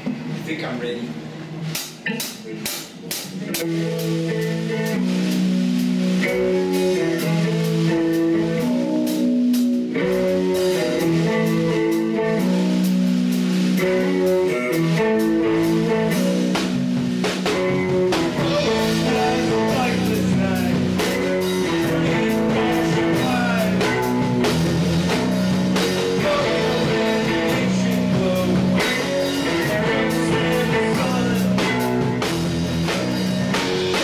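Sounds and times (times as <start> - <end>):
drum kit beat: 0.0 - 34.0
electric guitar chords: 1.3 - 34.0.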